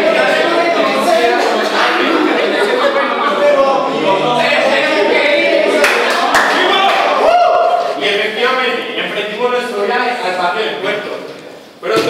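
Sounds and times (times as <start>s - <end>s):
group of voices chanting: 0.0s - 7.2s.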